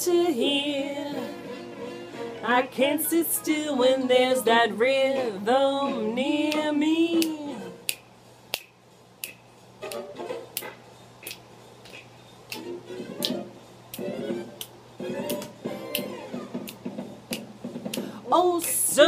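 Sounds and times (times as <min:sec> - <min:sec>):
fingers snapping: 0:06.5 - 0:16.1, 0:16.7 - 0:18.8.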